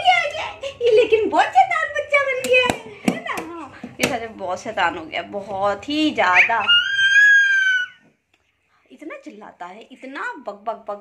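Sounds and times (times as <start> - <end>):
baby squealing: 6.3 - 8.1.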